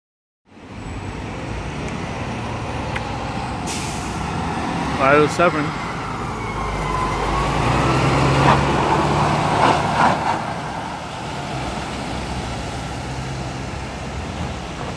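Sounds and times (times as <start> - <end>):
diesel truck engine rumble: 0.5 - 14.9.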